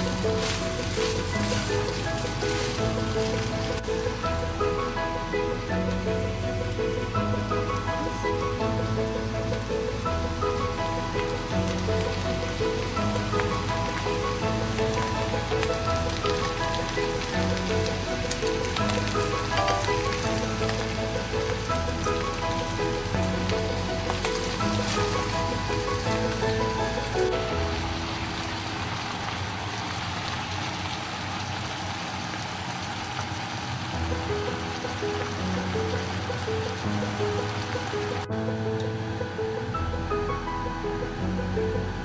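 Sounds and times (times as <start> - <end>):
food sizzling in a pan: 0.0 - 5.0, 10.9 - 38.2
background music: 0.0 - 29.3, 34.0 - 42.0.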